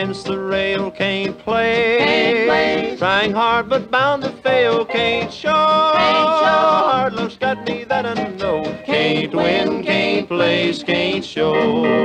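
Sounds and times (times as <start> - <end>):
string band with steel guitar: 0.0 - 12.0.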